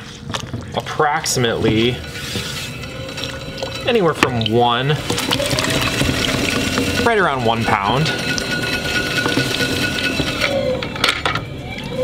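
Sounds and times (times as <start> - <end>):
wet clay squishing: 0.0 - 10.5.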